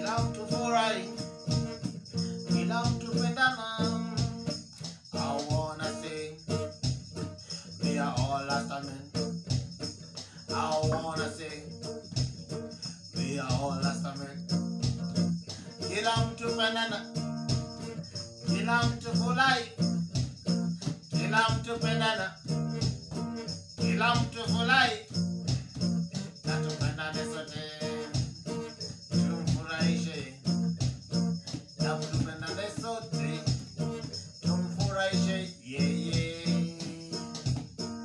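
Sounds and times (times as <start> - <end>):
acoustic guitar: 0.0 - 38.0
hand drum: 0.0 - 38.0
jingling percussion: 0.0 - 38.0.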